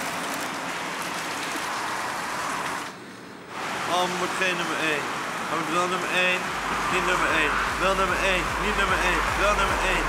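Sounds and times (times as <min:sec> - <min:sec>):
falling rain hiss: 0:00.0 - 0:10.0.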